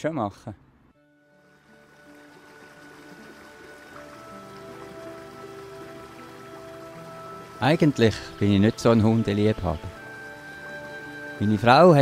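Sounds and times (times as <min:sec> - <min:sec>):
slow background music: 0:00.2 - 0:12.0.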